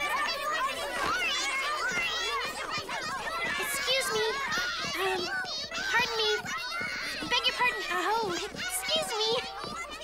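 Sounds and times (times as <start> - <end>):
high-pitched cartoon voices chattering: 0.0 - 10.0.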